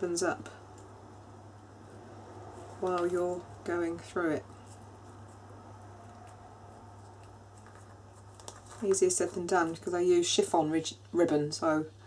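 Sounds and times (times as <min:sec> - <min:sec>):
low hum: 0:00.0 - 0:10.2
ribbon rustling: 0:02.5 - 0:10.0.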